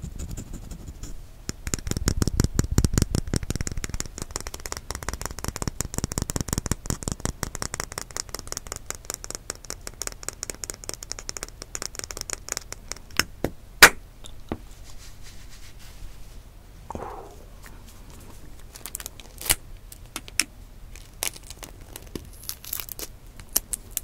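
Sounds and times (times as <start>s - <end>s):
fingernails tapping on eggshell: 1.5s - 14.6s.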